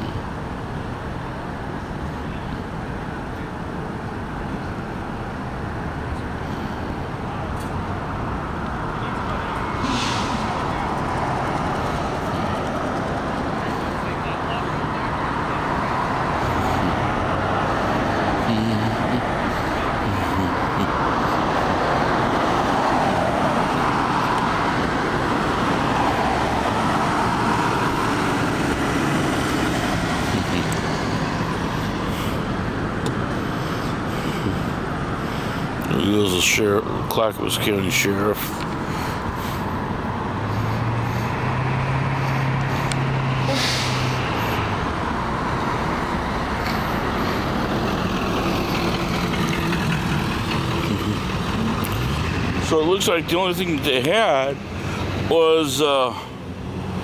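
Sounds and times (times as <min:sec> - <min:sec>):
cars passing on street: 0:00.0 - 0:57.0.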